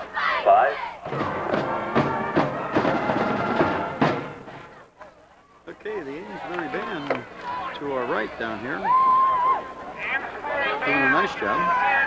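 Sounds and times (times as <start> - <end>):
school band playing: 1.0 - 4.7.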